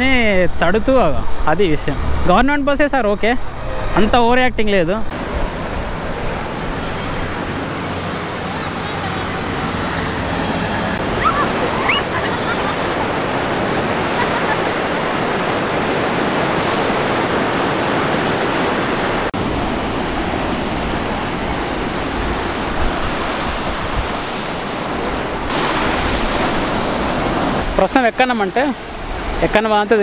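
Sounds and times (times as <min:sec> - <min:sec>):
ocean surf breaking: 0:05.1 - 0:30.0.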